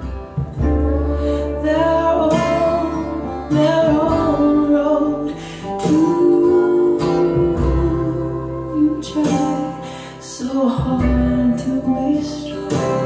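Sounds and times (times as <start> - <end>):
guitar-led song over loudspeakers: 0.0 - 13.0.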